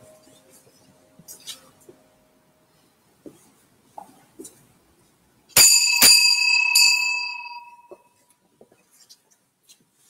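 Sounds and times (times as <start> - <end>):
bell ringing: 5.6 - 8.1.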